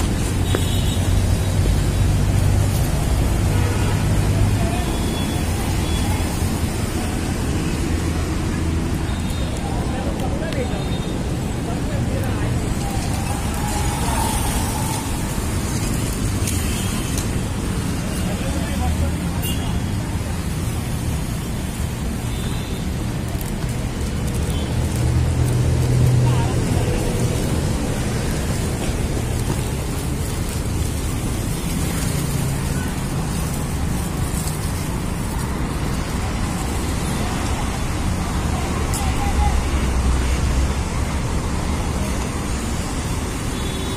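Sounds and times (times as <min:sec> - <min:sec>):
faint voices: 0:04.2 - 0:21.3, 0:23.1 - 0:43.4.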